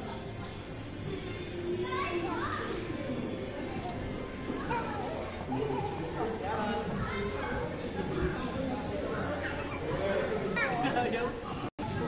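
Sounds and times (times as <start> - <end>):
children playing and chattering: 0.0 - 12.0.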